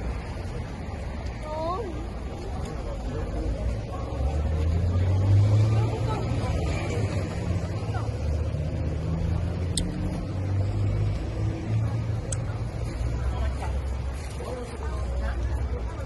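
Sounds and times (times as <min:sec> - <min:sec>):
passing car and motorbike engines: 0:00.0 - 0:16.0.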